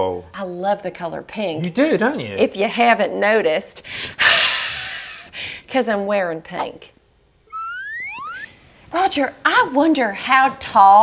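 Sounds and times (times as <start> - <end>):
rising cartoon whistle: 7.5 - 8.6.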